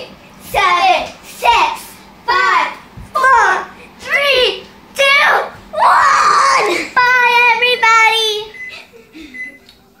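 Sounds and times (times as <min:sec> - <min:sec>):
child squealing: 0:05.8 - 0:06.8.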